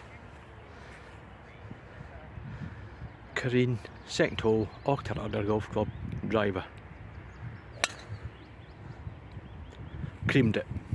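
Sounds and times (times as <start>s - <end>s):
wind rumble on microphone: 1.3s - 10.9s.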